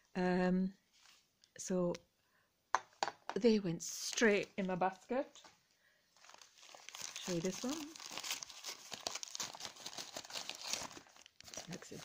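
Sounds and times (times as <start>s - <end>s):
newspaper crumpling: 6.2s - 12.0s.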